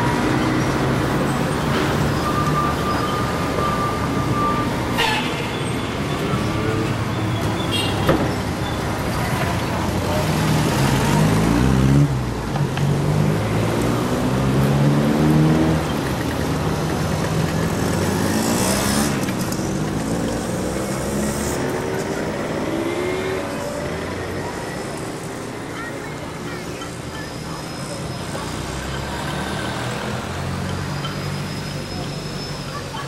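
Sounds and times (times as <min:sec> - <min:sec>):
road noise: 0:00.0 - 0:33.0
vehicle engine accelerating: 0:09.7 - 0:25.3.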